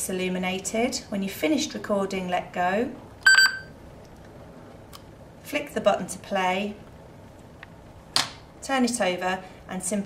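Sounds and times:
short electronic beep: 0:03.3 - 0:03.7.

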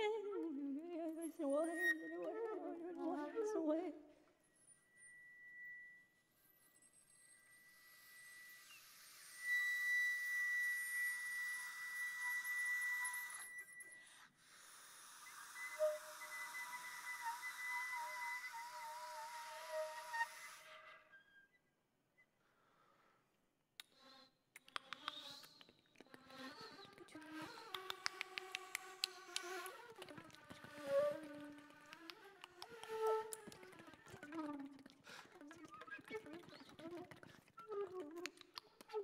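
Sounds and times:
high whistle-like tone: 0:01.4 - 0:03.8, 0:04.4 - 0:14.2, 0:15.0 - 0:22.3, 0:30.7 - 0:31.6, 0:32.8 - 0:34.6
breathy hiss: 0:14.0 - 0:17.6.

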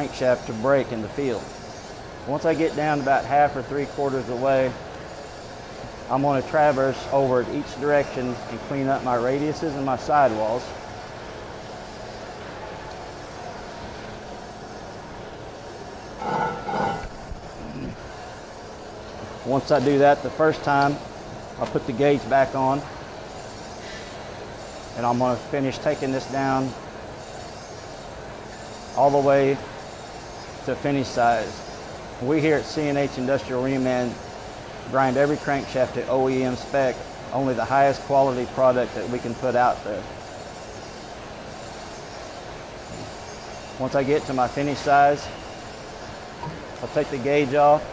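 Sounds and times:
grinding machine hum: 0:15.4 - 0:18.1.

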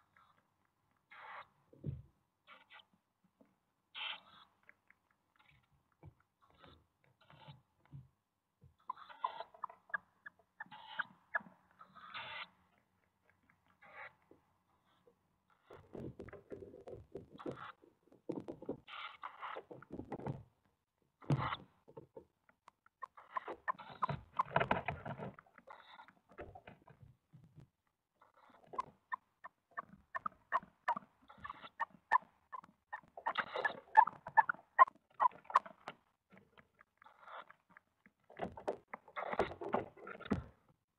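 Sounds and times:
owl chicks rasping calls: 0:01.1 - 0:01.5, 0:08.8 - 0:12.6, 0:13.8 - 0:14.2, 0:23.0 - 0:24.7, 0:28.3 - 0:35.7.

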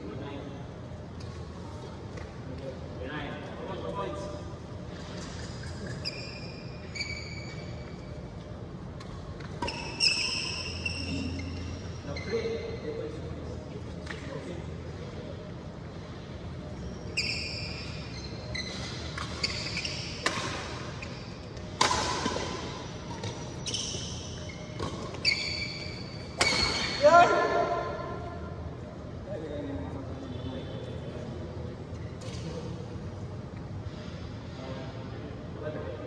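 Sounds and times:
shoes squeaking on floor: 0:05.3 - 0:08.2, 0:09.6 - 0:12.8, 0:16.8 - 0:21.7, 0:22.4 - 0:27.0
rackets striking shuttlecock: 0:19.1 - 0:20.9, 0:21.5 - 0:23.5.

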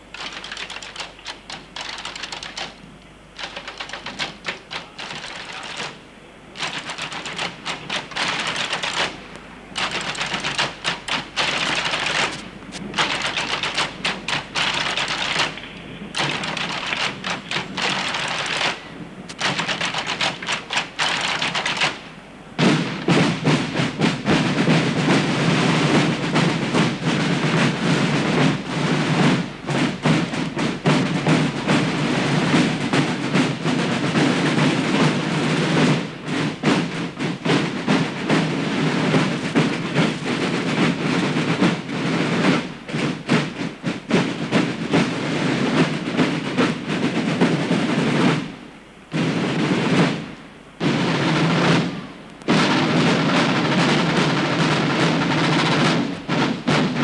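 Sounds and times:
massed marching drums: 0:00.0 - 0:57.0.

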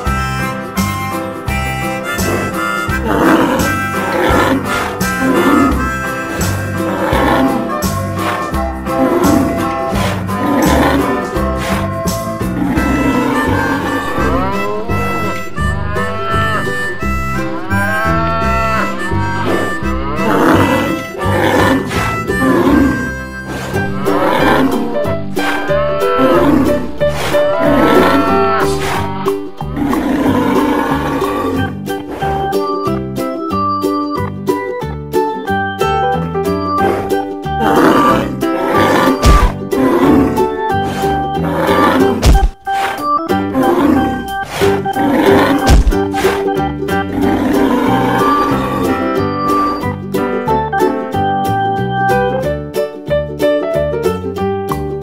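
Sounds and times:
background music with bass line: 0:00.0 - 0:53.3
bull bellowing: 0:02.2 - 0:32.5, 0:36.8 - 0:49.9
cattle calls: 0:12.5 - 0:32.5, 0:36.9 - 0:49.9.

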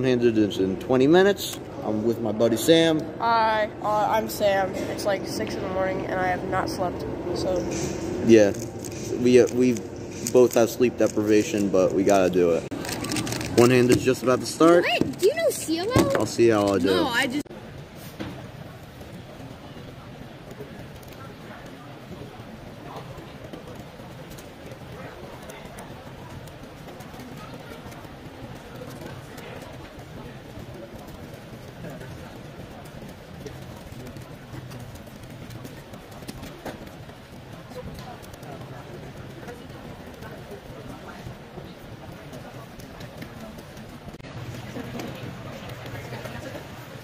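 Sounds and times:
background chatter of many people: 0:00.0 - 0:47.0.

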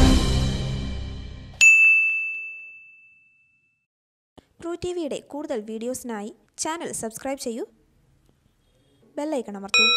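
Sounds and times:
background music: 0:00.0 - 0:01.6
bright bell-like ding: 0:01.6 - 0:03.8.

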